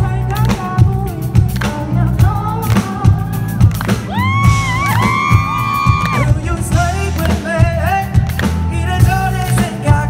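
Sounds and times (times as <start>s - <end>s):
man singing: 0.0s - 4.2s, 4.9s - 10.0s
drum kit: 0.0s - 10.0s
keyboard: 0.0s - 10.0s.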